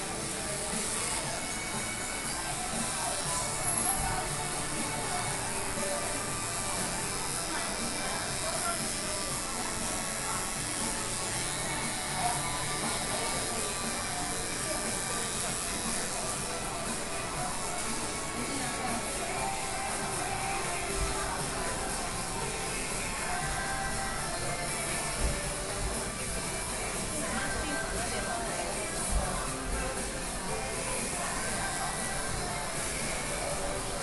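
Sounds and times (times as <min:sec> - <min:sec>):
background music: 0:00.0 - 0:34.0
electric hair clippers buzzing: 0:00.0 - 0:34.0.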